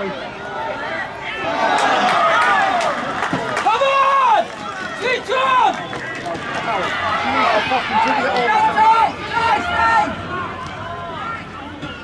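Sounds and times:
people shouting: 0:00.5 - 0:05.8, 0:06.6 - 0:11.5.

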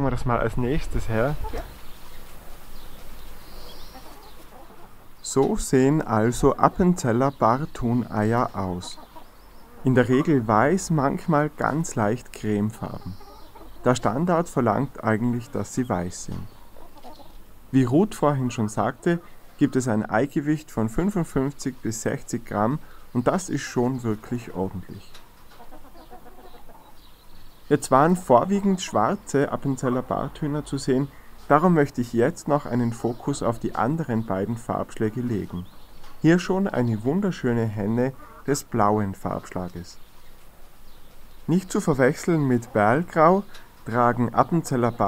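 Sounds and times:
chickens clucking: 0:00.0 - 0:45.0.

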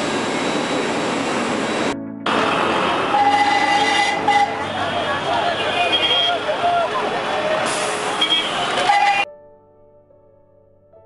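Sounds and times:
buses running past: 0:00.0 - 0:09.3
horn toots: 0:03.0 - 0:06.6, 0:07.7 - 0:09.3
people's voices: 0:04.6 - 0:08.9.

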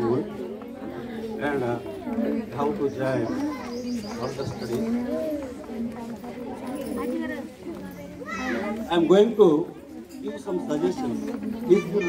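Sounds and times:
children's voices chattering: 0:00.0 - 0:12.0.

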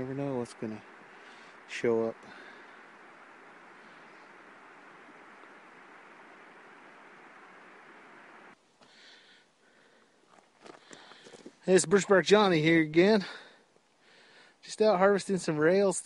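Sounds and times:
faint outdoor hiss: 0:00.0 - 0:16.0.

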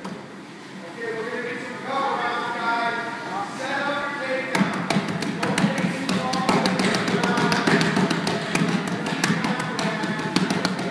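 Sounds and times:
punches slapping and tapping: 0:04.6 - 0:10.9.

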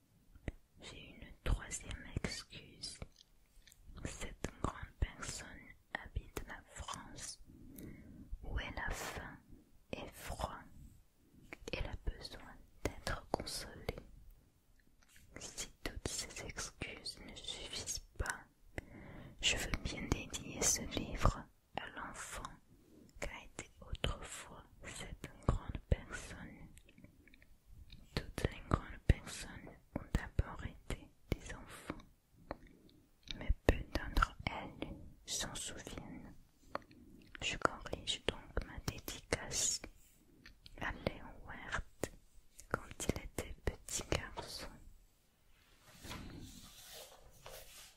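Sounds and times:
person whispering: 0:00.3 - 0:14.2, 0:15.0 - 0:45.0, 0:45.7 - 0:47.9
brush sweeping over paper: 0:45.6 - 0:47.9.

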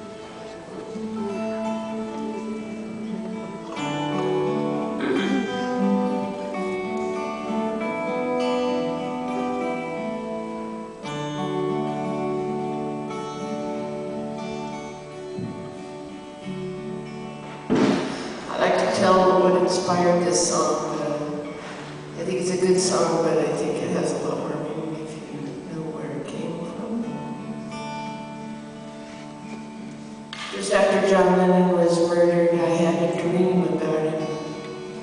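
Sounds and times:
acoustic guitars playing: 0:00.0 - 0:35.0
rough burst of sound: 0:17.7 - 0:18.5.

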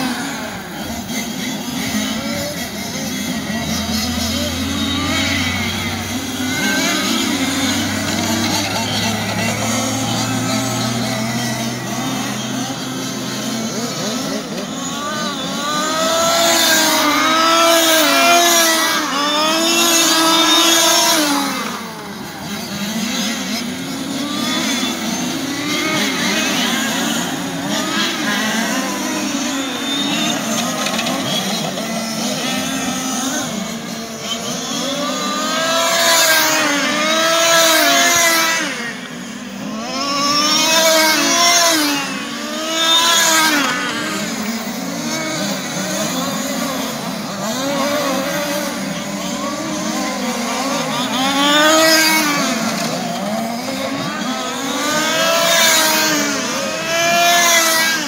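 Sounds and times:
rc car engines revving: 0:00.0 - 0:58.0.

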